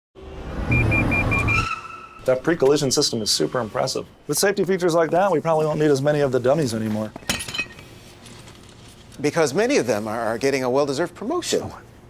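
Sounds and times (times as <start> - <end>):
high tone: 0.6 - 4.4
rapid high warning beeps: 0.7 - 1.9, 2.7 - 4.3.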